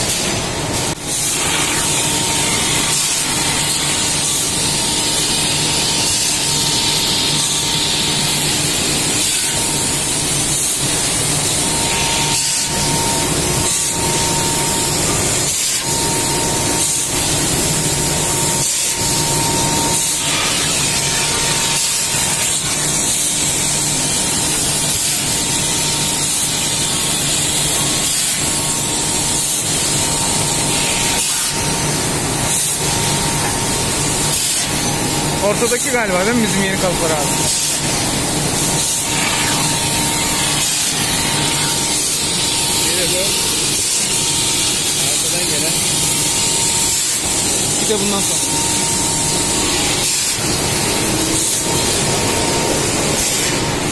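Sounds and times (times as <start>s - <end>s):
constant machine whine: 0.0s - 53.9s
machinery hissing: 29.4s - 53.9s.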